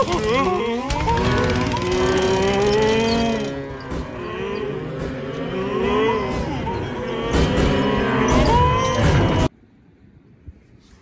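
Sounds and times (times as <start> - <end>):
cartoon cow-like moos: 0.0 - 9.5.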